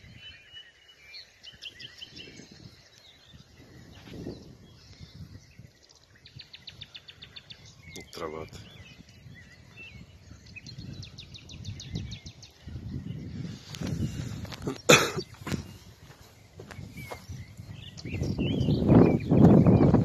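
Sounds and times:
faint bird chirps: 0.0 - 20.0.

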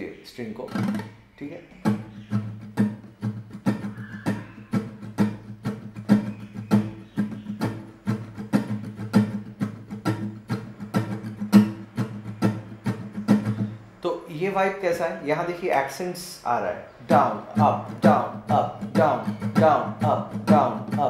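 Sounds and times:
acoustic guitar strumming: 0.6 - 14.0, 17.0 - 21.0.

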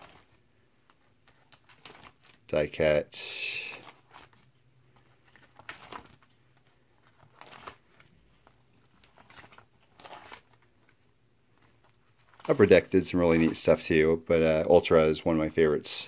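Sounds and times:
plastic pages crinkling: 0.0 - 15.6.

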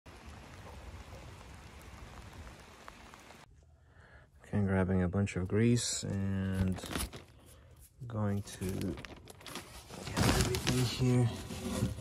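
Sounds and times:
rain hissing: 0.1 - 3.5.

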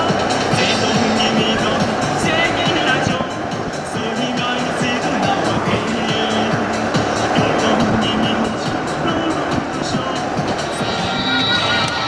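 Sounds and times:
car driving rumble: 0.0 - 12.0
music with short held notes: 10.6 - 12.0.

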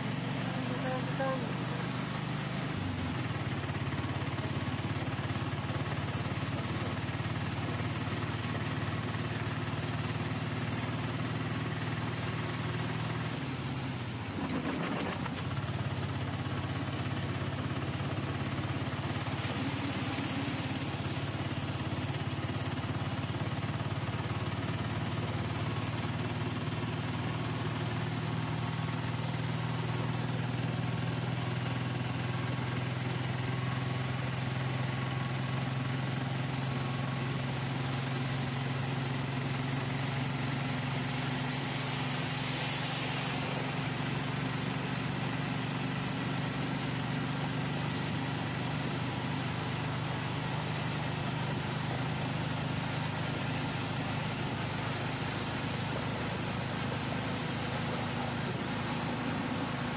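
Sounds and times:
bus engine running: 0.0 - 59.9.

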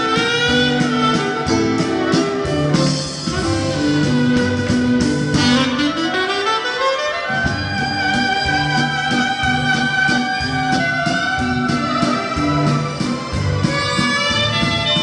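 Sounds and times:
dance band playing a waltz: 0.0 - 15.0
saxophone melody: 0.0 - 15.0.

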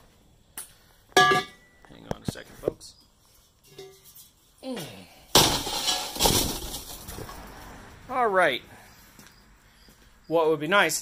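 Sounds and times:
loud clatter with rustling: 5.4 - 7.4.

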